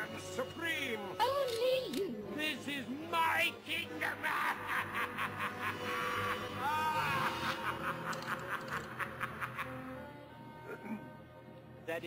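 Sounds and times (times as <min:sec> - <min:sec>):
man laughing gloatingly: 0:03.9 - 0:10.1.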